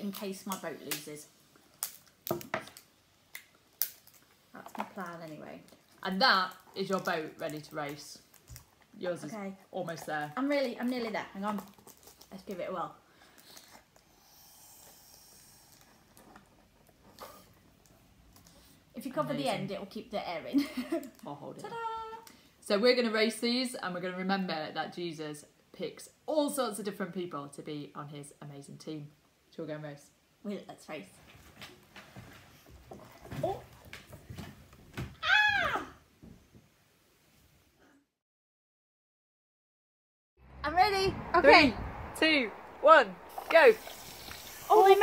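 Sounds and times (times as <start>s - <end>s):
breath blown through a straw: 13.4s - 16.1s
people shuffling chairs: 31.2s - 35.0s.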